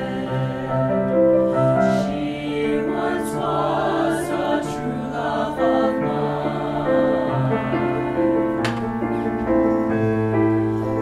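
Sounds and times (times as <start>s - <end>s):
mixed choir singing in harmony: 0.0s - 8.6s.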